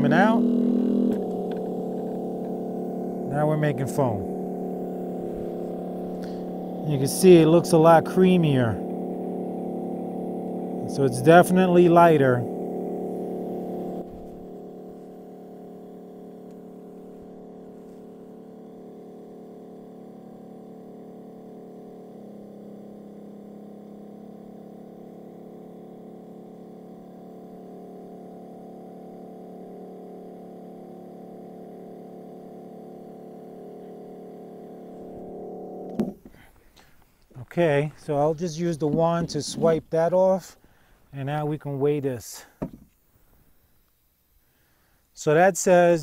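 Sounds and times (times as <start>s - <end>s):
foam generator humming: 0.0s - 43.7s, 44.4s - 46.0s.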